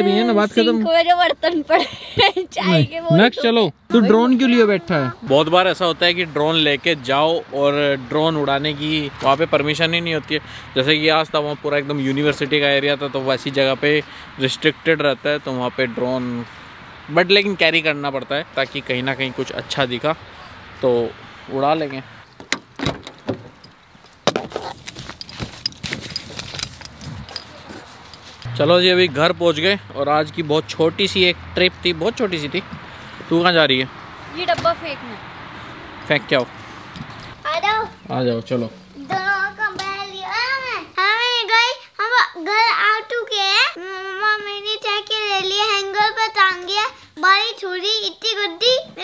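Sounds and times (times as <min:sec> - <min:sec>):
keys jangling: 0:25.0 - 0:28.5.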